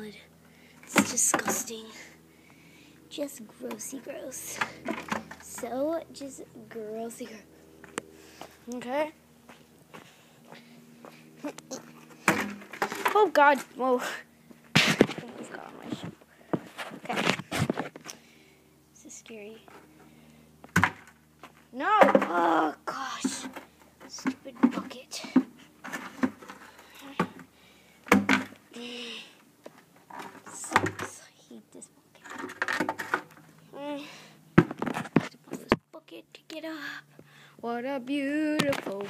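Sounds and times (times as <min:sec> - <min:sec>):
faint steady hum: 0:00.0 - 0:39.0
sneaker knocking plastic bucket: 0:28.1 - 0:28.6.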